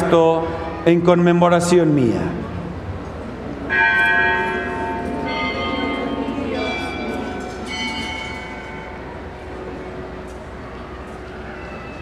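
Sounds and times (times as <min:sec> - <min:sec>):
bells ringing at different pitches: 0:03.7 - 0:09.6.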